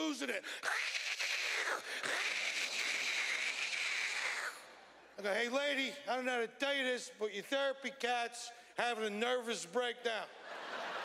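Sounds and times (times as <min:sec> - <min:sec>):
man hissing like a cat: 0:00.4 - 0:04.7.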